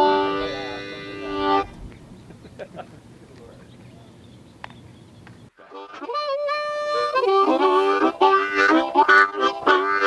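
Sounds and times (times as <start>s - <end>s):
harmonica playing: 0.0s - 1.7s, 5.6s - 10.0s.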